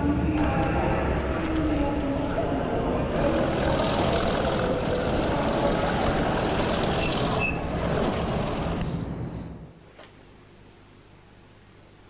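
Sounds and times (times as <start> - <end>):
train rumbling: 0.0 - 9.7.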